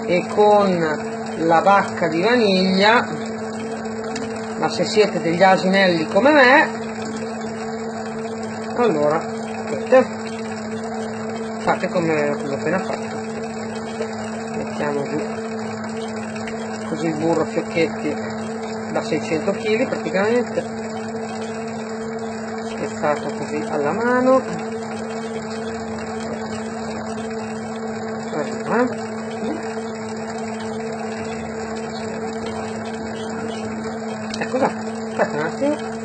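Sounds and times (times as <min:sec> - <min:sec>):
electric dough mixer humming: 0:00.0 - 0:36.0.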